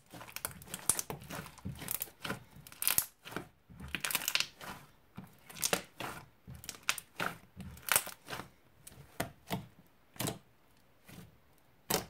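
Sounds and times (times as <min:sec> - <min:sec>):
slime squelching and popping: 0:00.0 - 0:10.4, 0:11.8 - 0:12.0.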